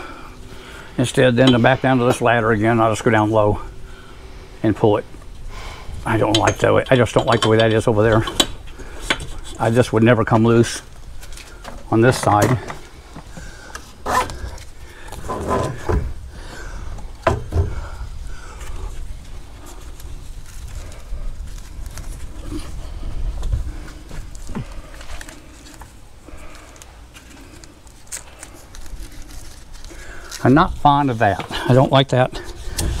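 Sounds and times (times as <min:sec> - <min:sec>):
strap rustling: 0:05.2 - 0:33.0
steady low rumble: 0:14.4 - 0:31.2.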